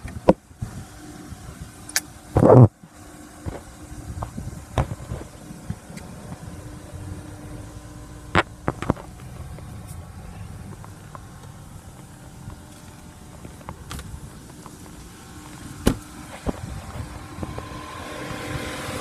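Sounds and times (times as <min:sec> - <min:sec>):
low steady rumble: 0:00.0 - 0:19.0.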